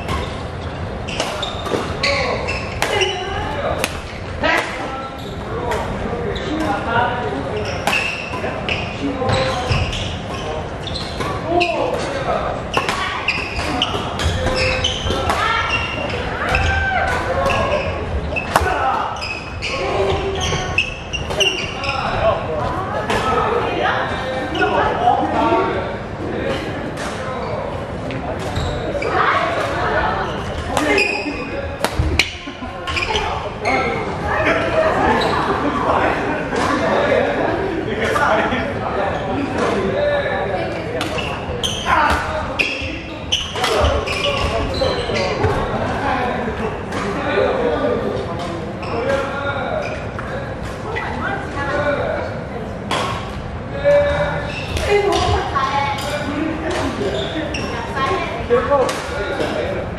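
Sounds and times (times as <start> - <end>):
shoes squeaking on wooden floor: 0.0 - 3.4, 7.6 - 12.1, 12.7 - 16.7, 17.4 - 22.2, 28.5 - 29.5, 32.9 - 34.2, 41.1 - 45.7, 54.0 - 56.2, 57.0 - 58.2
players' voices: 0.0 - 59.9.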